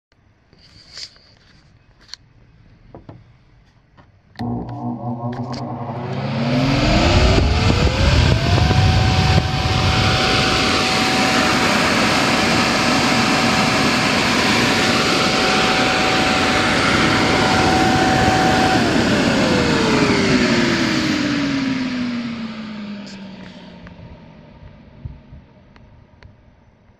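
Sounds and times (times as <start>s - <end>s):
electric air blower running: 4.4s - 24.0s.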